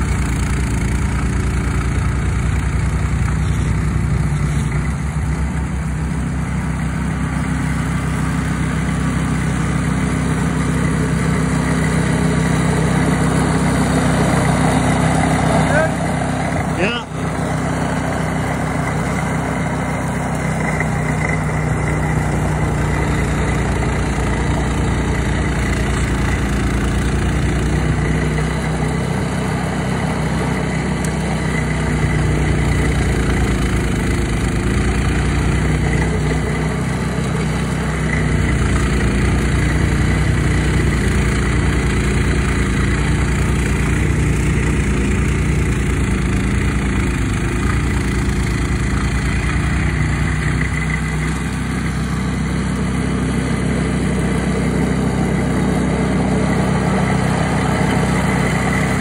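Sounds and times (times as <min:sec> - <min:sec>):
snowblower engine running: 0:00.0 - 0:59.0.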